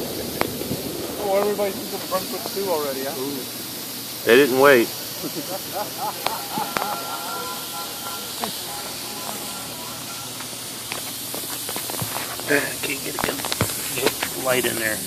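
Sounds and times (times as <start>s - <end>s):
steam hissing from locomotive: 0.0s - 15.0s.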